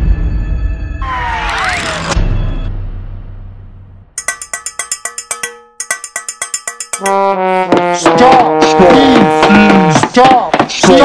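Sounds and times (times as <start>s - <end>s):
ringing percussion taps: 4.2s - 11.0s.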